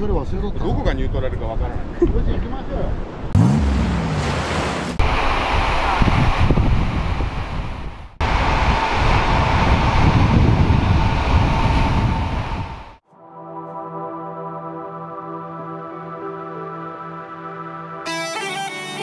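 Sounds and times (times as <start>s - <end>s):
ocean surf breaking: 3.4s - 13.0s
wind buffeting microphone: 5.0s - 13.0s.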